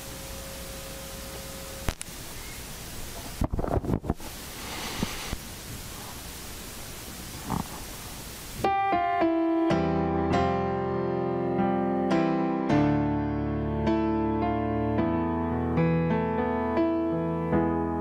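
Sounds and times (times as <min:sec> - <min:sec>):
steady hiss: 0:00.0 - 0:11.6
electronic keyboard sustained chords: 0:08.6 - 0:18.0.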